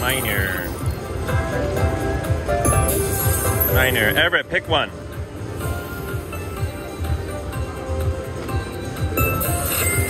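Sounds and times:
slot machine bonus music: 0.0 - 1.8, 2.5 - 4.4, 8.8 - 10.0.

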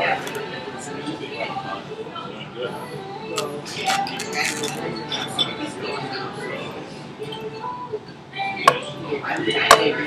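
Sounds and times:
hum of background voices: 0.0 - 10.0.

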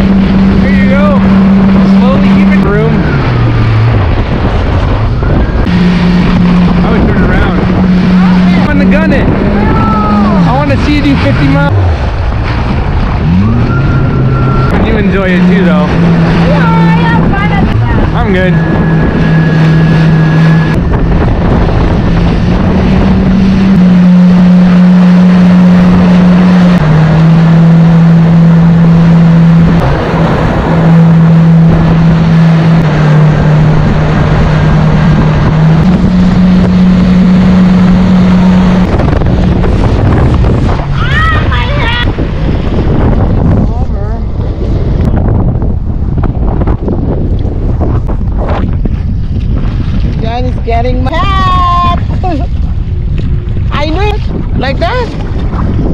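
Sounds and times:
jet ski engine: 0.0 - 55.9
rush of wind and water: 0.0 - 55.9.

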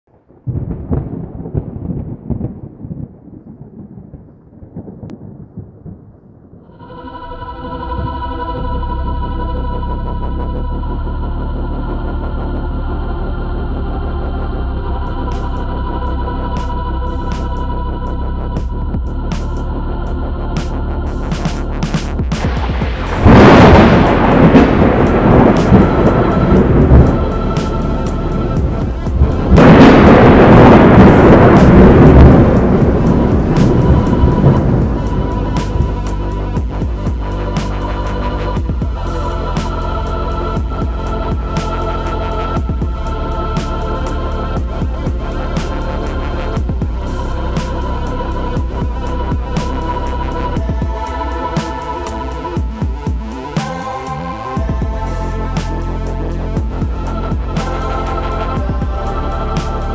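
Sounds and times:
thunder rumbling: 0.1 - 12.4, 13.2 - 59.9
music with steady beat: 15.0 - 59.9.

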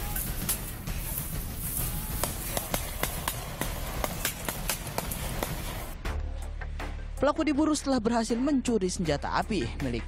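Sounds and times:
running footsteps in tall grass: 0.0 - 6.0
steady noisy rush: 0.0 - 6.0.

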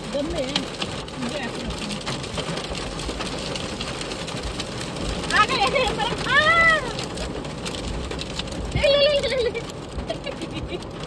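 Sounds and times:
hail and rain on car roof: 0.0 - 11.0.

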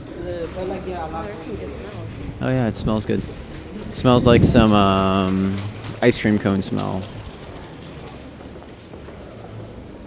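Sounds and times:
city street background noise: 0.0 - 10.0.

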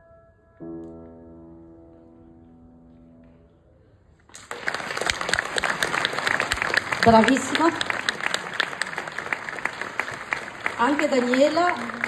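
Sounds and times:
audience applause: 4.3 - 12.0.

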